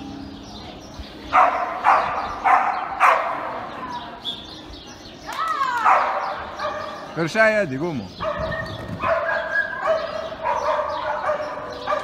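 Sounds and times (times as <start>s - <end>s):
dog barking: 1.3s - 3.5s, 5.8s - 7.0s, 8.2s - 12.0s
dog yelping: 8.2s - 12.0s.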